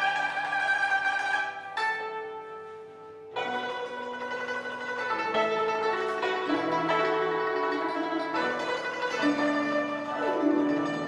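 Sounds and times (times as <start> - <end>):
hammered dulcimer and zither music: 0.0 - 11.0.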